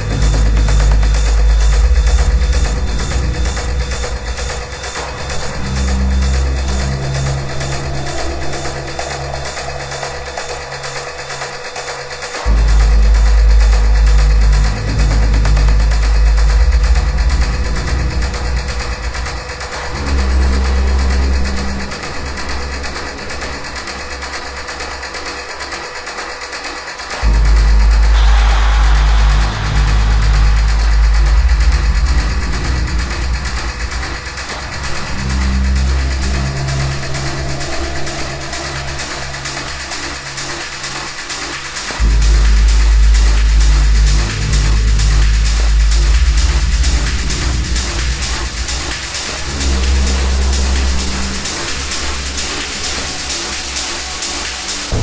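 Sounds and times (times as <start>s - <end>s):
fast hi-hat beat: 0.0s - 55.0s
heavy pulsing bass line: 0.0s - 55.0s
minimal techno music: 0.0s - 55.0s
falling noise sweep: 27.8s - 32.5s.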